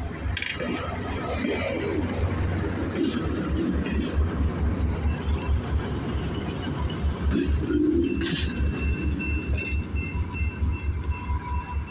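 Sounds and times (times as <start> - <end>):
diesel locomotive idling throb: 0.0 - 11.9.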